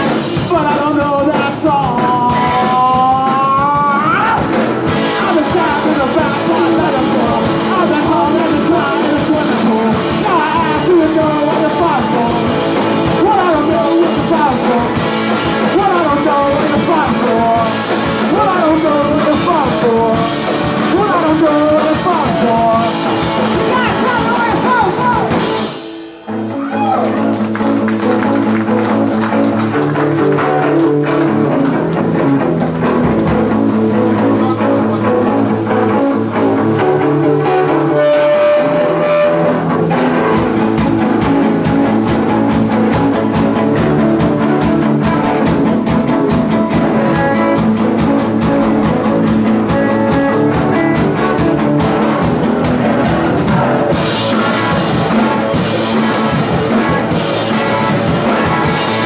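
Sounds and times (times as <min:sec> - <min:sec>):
person singing: 0:00.0 - 0:25.4, 0:33.9 - 0:59.0
electric guitar riff: 0:00.0 - 0:59.0
rock band playing: 0:00.0 - 0:59.0.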